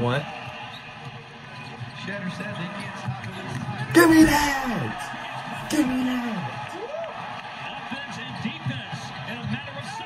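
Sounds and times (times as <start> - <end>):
commentator talking: 3.9 - 6.8.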